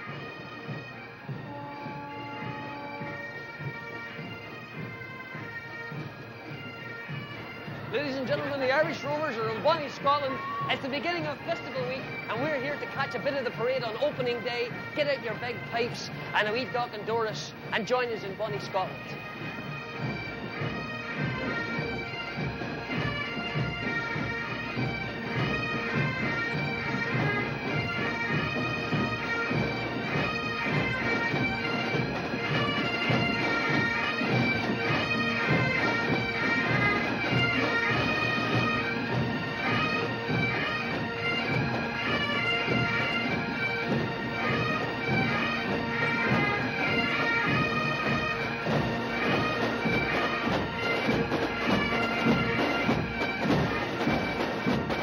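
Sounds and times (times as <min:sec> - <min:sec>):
bagpipes droning and playing melody: 0:00.0 - 0:55.0
drums marking the beat: 0:00.0 - 0:55.0.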